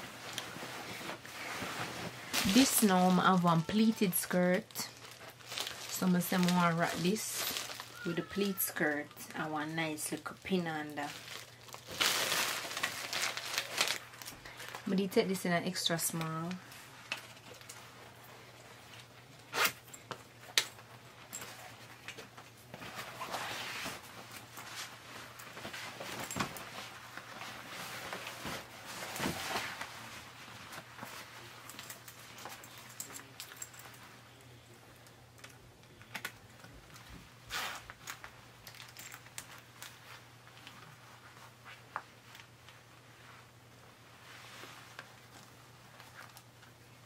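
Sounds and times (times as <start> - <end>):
jacket rustling and creaking: 0.0 - 14.9, 16.4 - 34.4, 36.9 - 46.8.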